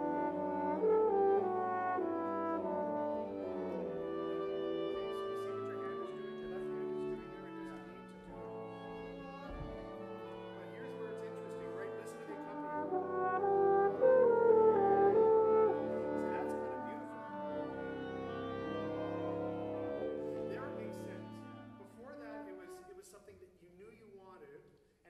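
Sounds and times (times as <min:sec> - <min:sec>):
wind ensemble playing chords: 0:00.0 - 0:23.1.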